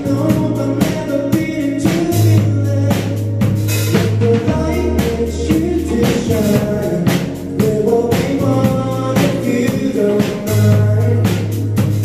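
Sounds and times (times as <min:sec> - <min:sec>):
bass guitar: 0:00.0 - 0:12.0
drum kit beat: 0:00.0 - 0:12.0
man singing: 0:00.0 - 0:12.0.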